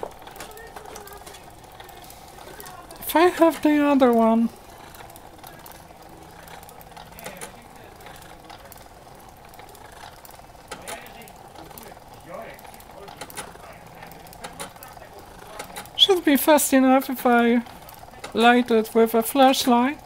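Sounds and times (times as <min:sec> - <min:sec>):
faint mechanical whir: 0:00.0 - 0:20.0.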